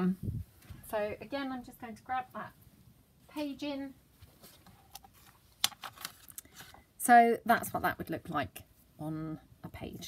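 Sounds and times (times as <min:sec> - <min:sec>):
paper rustles and taps: 0:04.2 - 0:06.8.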